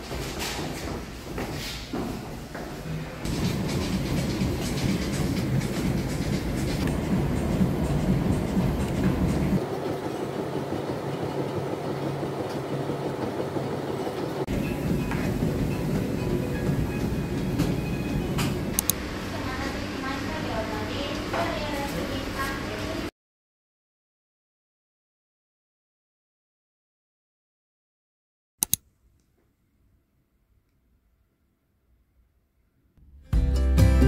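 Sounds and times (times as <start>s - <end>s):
low rumble: 3.2s - 9.6s
background music: 3.3s - 9.6s, 33.0s - 34.0s.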